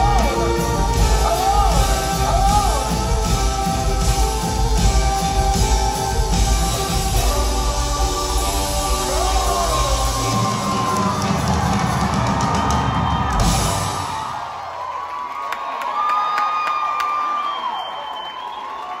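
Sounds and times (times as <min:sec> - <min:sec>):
live rock band playing: 0:00.0 - 0:14.4
crowd cheering and screaming: 0:00.0 - 0:19.0.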